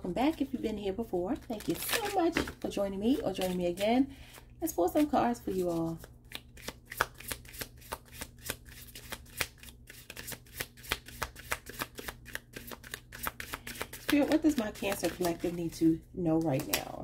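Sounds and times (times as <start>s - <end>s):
cards being shuffled: 1.4s - 15.6s.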